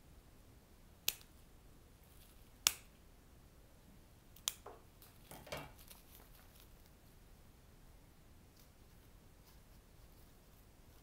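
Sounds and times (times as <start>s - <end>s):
snips cutting stems: 2.6s - 2.9s.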